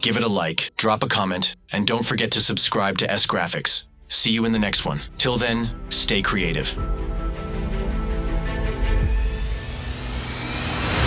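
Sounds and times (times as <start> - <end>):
low rumble: 3.9 - 11.0
rising whoosh: 6.8 - 11.0.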